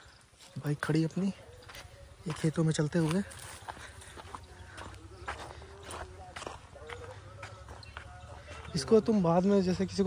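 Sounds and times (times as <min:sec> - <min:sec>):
footsteps on dirt path: 0:00.0 - 0:10.0.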